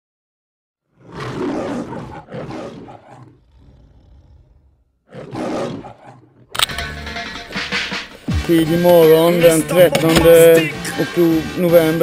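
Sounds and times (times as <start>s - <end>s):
loud rough roars: 0.9s - 6.5s.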